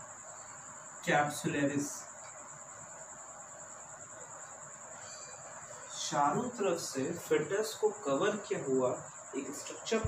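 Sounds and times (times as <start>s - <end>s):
high-pitched insect trilling: 0.0s - 10.0s
low room hiss: 0.0s - 10.0s.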